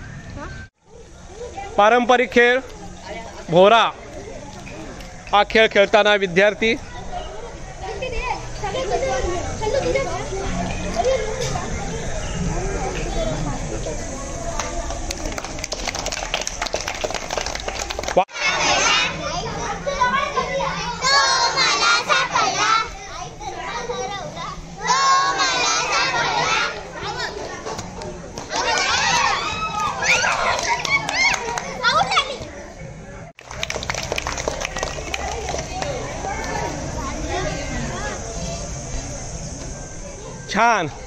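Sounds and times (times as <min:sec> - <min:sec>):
chatter: 0:00.0 - 0:41.0
children's voices sing-song: 0:20.4 - 0:23.0, 0:24.6 - 0:27.5.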